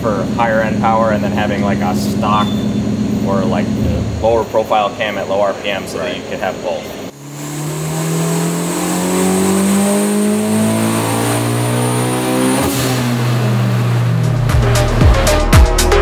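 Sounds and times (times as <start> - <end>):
engine running hard under load: 0.0 - 10.7
turbo whistle: 2.2 - 3.4
electronic music with a beat: 14.1 - 16.0.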